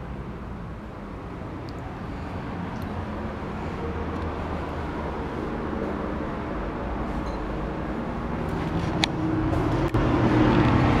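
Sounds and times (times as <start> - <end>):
road traffic rumble: 0.0 - 11.0
brief high squeak: 7.2 - 7.5.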